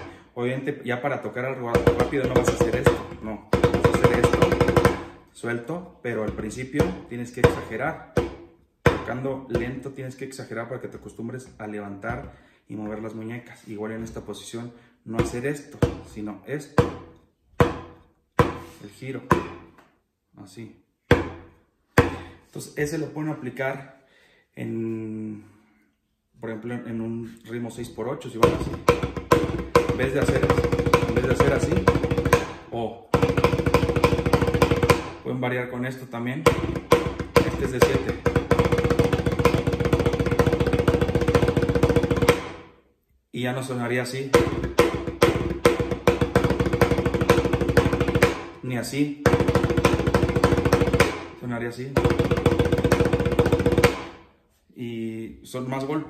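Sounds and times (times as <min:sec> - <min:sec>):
snare drum played fast: 0:01.8 - 0:05.2, 0:28.4 - 0:35.2, 0:36.5 - 0:42.7, 0:44.4 - 0:48.6, 0:49.2 - 0:54.2.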